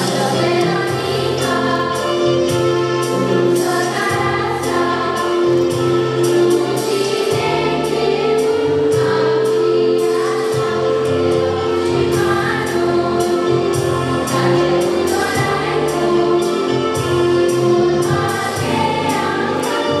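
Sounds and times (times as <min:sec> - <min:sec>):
girls' choir singing in harmony: 0:00.0 - 0:20.0
instrumental accompaniment with beat: 0:00.0 - 0:20.0.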